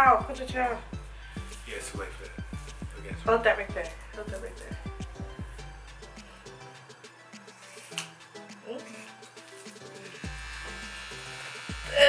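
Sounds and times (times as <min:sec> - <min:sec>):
background music with deep bass: 0:00.0 - 0:12.0
electric hair clippers buzzing: 0:05.1 - 0:12.0.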